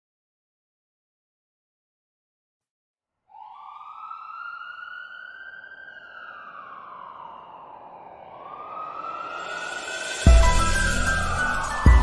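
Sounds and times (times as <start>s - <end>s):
ambulance siren wailing: 3.3s - 12.0s.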